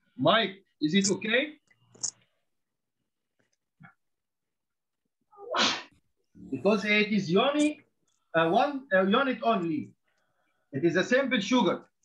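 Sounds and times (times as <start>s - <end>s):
person sneezing: 5.4s - 6.0s.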